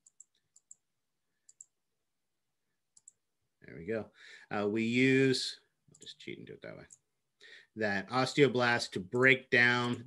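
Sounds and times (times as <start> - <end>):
computer mouse clicks: 0.0 - 0.8, 1.4 - 1.8, 3.0 - 3.2.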